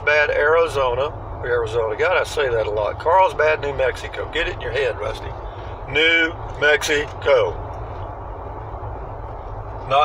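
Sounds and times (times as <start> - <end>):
vehicle cabin road rumble: 0.0 - 10.0.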